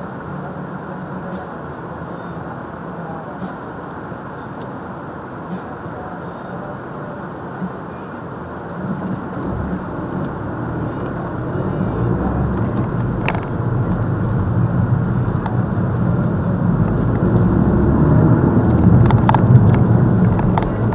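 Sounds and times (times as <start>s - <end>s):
road noise inside car: 0.0s - 20.9s
car engine accelerating: 8.6s - 20.9s.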